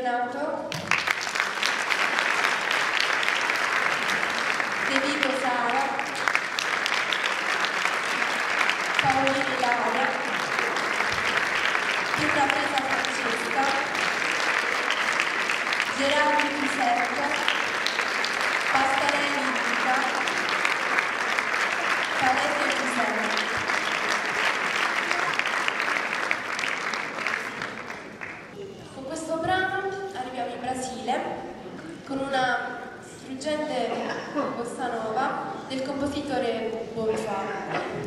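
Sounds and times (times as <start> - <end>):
audience applauding: 0.7 - 28.6
voices over clapping: 0.9 - 28.4.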